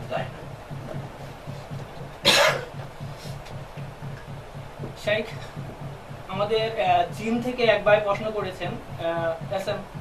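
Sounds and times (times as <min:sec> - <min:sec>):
man coughing: 0:02.2 - 0:02.8.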